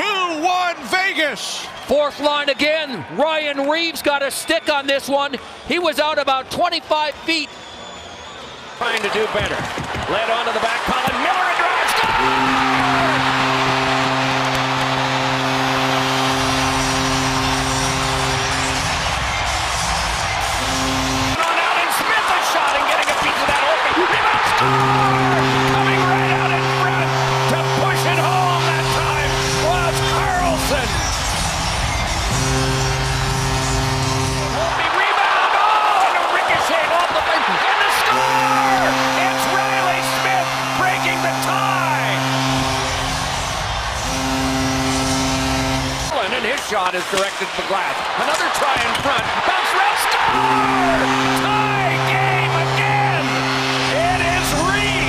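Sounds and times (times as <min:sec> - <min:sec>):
arena crowd cheering: 0:00.0 - 0:55.0
goal horn blasts: 0:11.0 - 0:46.3, 0:48.8 - 0:55.0.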